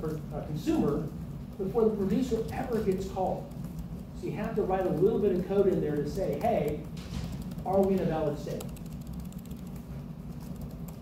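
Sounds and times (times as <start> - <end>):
low room hum: 0.0 - 11.0
keyboard typing clicks: 2.1 - 11.0.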